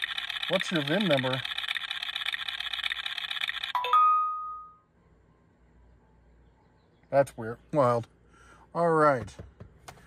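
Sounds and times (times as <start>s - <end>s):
electronic reel-spinning rattle: 0.0s - 3.8s.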